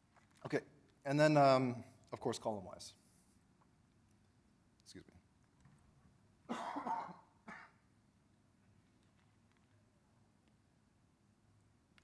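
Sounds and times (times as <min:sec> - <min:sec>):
man coughing: 0:06.5 - 0:07.8.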